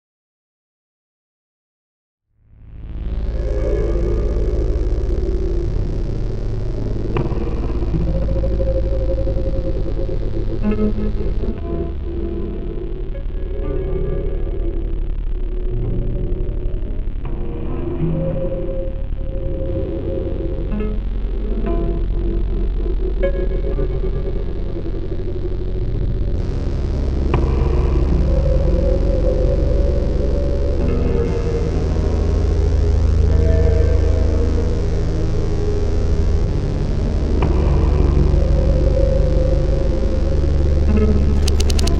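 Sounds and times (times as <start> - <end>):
low rumbling drone: 2.3 - 41.9
sustained tones: 2.8 - 41.9
held tones: 41.4 - 41.9
sharp click: 41.4 - 41.9.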